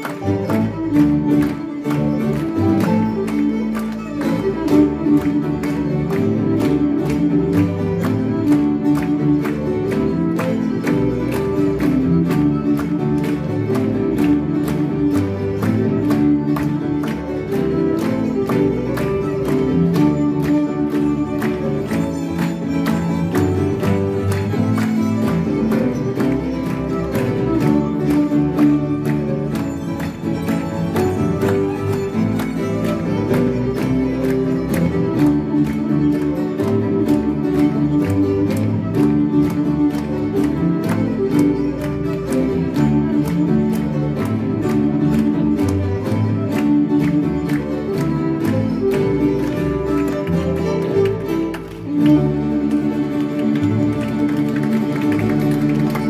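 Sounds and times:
acoustic guitar: 0.0 - 56.0
bowed violin: 0.0 - 56.0
double bass: 0.0 - 56.0
grand piano: 0.0 - 56.0.

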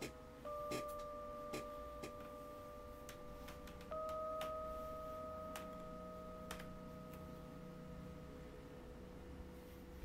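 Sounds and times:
high sustained drone: 0.0 - 10.0.

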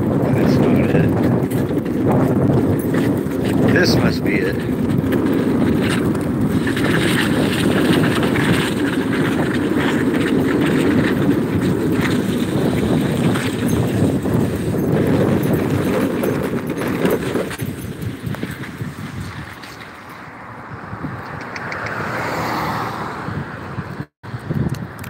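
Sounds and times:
wheels rolling on asphalt: 0.0 - 25.0.

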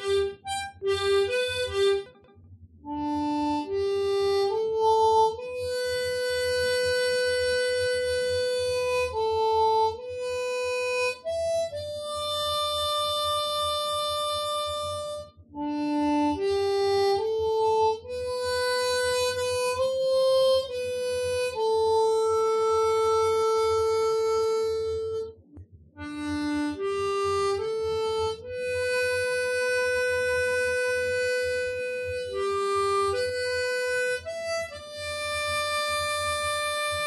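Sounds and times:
harmonica long note: 0.0 - 2.2, 2.8 - 25.4, 26.0 - 37.0.

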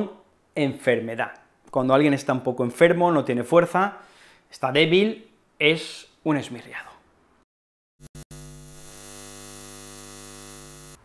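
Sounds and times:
electrical mains hum: 8.1 - 11.0.

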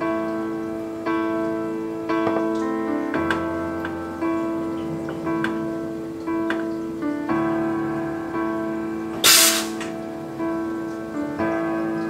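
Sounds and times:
soft piano music: 0.0 - 12.0
espresso machine steam hiss: 9.2 - 9.8.

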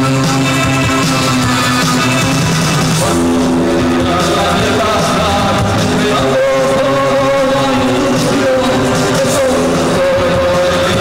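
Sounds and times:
bass: 0.0 - 11.0
drums: 0.0 - 11.0
gothic dark-wave band playing: 0.0 - 11.0
guitar: 0.0 - 11.0
keyboards: 0.0 - 11.0.

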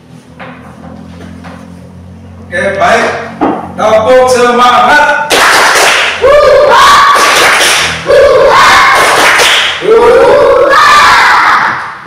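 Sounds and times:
children shouting in unison: 6.2 - 7.4, 8.0 - 12.0.

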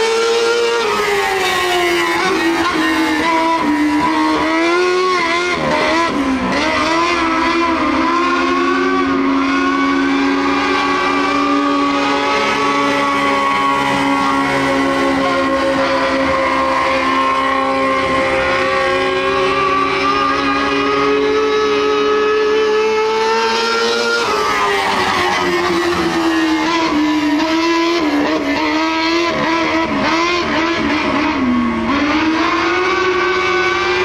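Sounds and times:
race car engine revving: 0.0 - 34.0.

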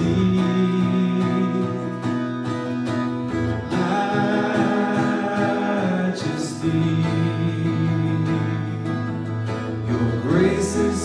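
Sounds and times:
man singing: 0.0 - 2.6, 3.3 - 11.0
acoustic guitar chords: 0.0 - 11.0.

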